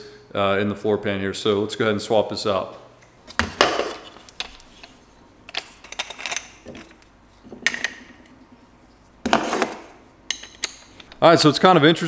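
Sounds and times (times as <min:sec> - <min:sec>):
metal clinks and knocks: 0:05.5 - 0:08.4, 0:10.3 - 0:11.2.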